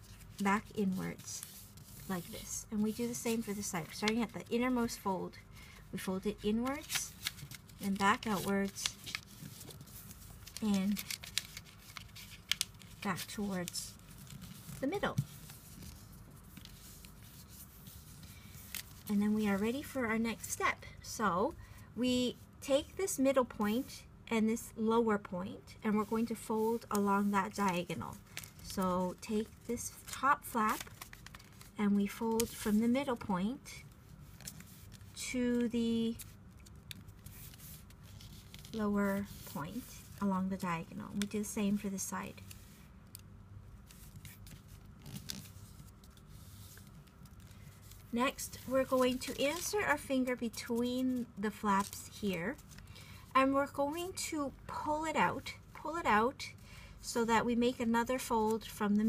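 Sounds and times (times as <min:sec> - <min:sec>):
paper rustling: 0:00.0 - 0:05.0, 0:06.4 - 0:19.9, 0:26.0 - 0:33.2, 0:34.0 - 0:43.2, 0:43.8 - 0:53.2.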